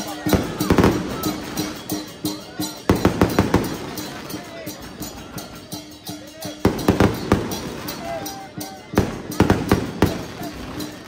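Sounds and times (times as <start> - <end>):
drum and clashing cymbals: 0.0 - 11.0
murmur of crowd voices: 0.0 - 11.0.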